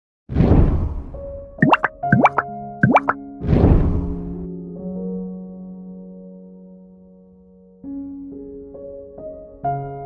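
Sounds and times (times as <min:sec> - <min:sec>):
quick rising plops: 0:01.6 - 0:03.2.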